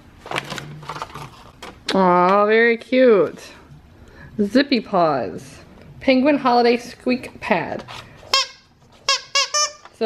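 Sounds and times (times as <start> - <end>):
plush dog toy squeaking: 8.3 - 10.0.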